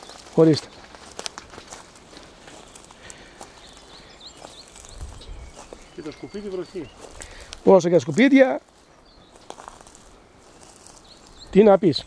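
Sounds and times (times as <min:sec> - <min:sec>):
footsteps on dry leaves and twigs: 0:00.0 - 0:12.0.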